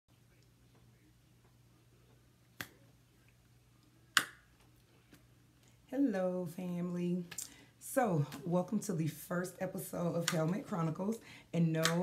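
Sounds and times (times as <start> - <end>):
faint low hum: 0.1 - 12.0.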